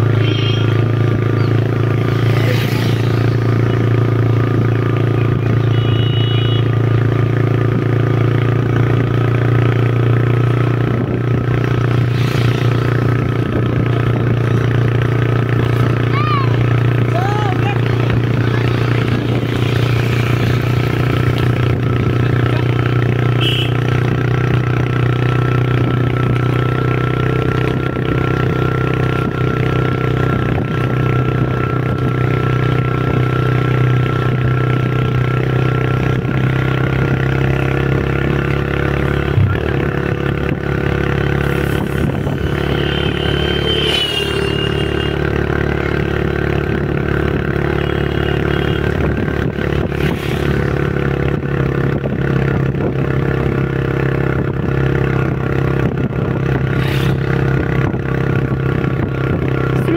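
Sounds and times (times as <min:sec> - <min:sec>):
road and wind noise: 0:00.0 - 0:59.9
vehicle engine cruising: 0:00.0 - 0:59.9
short high gliding tone: 0:41.5 - 0:45.4.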